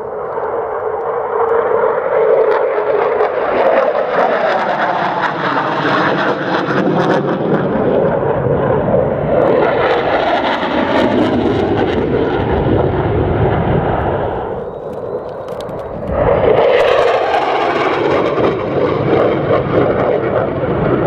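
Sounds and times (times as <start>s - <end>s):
jet engine roaring overhead: 0.0s - 21.0s.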